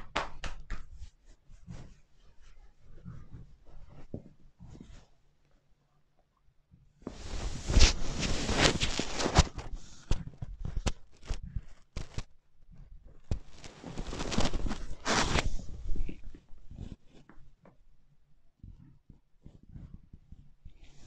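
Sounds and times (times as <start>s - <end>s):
fabric rustle: 7.1s - 10.0s, 13.3s - 17.0s.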